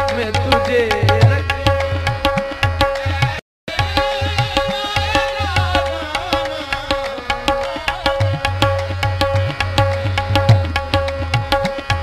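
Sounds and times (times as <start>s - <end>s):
tabla playing a steady beat: 0.0s - 12.0s.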